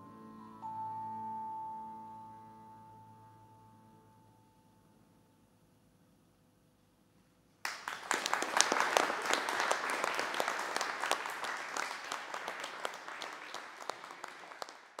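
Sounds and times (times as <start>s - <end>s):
audience applauding: 7.6s - 15.0s.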